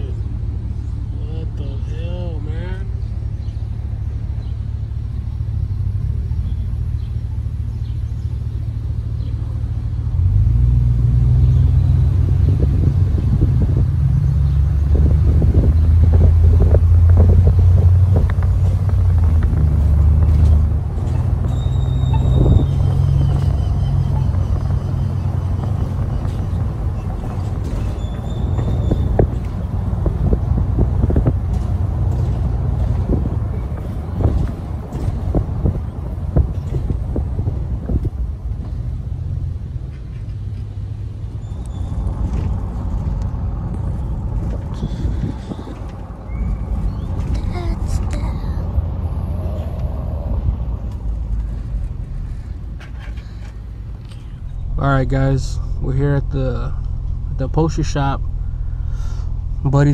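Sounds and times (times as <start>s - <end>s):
vehicle engine and road rumble: 0.0s - 59.9s.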